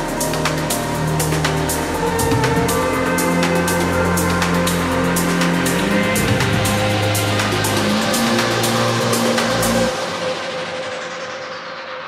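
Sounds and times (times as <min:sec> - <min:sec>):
filtered hissing wash: 0:00.0 - 0:12.0.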